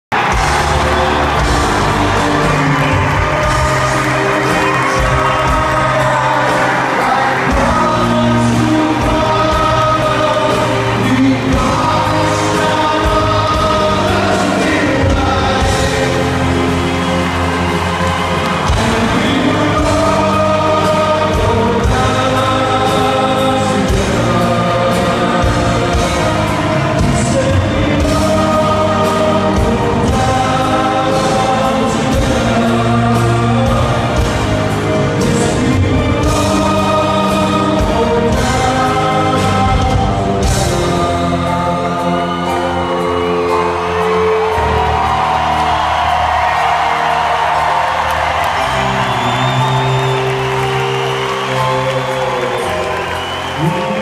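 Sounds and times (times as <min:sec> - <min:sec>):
group singing in chorus: 0:00.1 - 0:54.0
rock band playing: 0:00.1 - 0:54.0.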